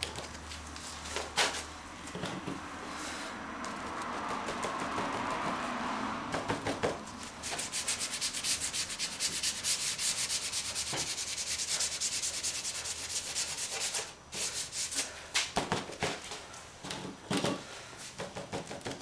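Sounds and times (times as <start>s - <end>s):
scratchy rubbing on board: 7.4s - 15.1s.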